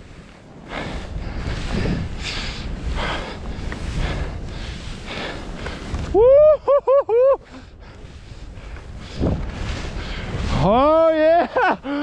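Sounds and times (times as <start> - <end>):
skis swishing through powder snow: 0.0 - 12.0
wind rumble on microphone: 0.0 - 12.0.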